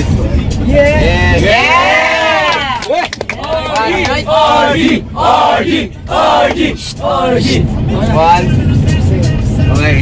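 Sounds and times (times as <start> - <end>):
vehicle engine rumble: 0.0 - 10.0
boys shouting and cheering: 0.6 - 7.6.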